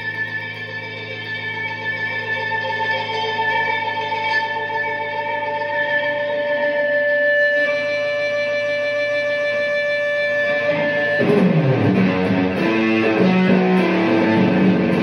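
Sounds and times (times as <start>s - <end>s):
fuzzed electric guitar notes: 0.0s - 15.0s.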